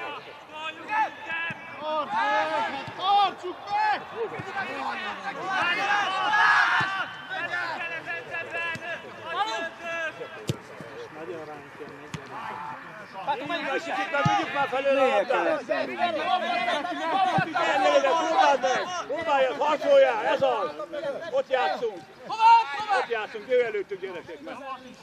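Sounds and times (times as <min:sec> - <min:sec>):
players shouting: 0:00.0 - 0:25.0.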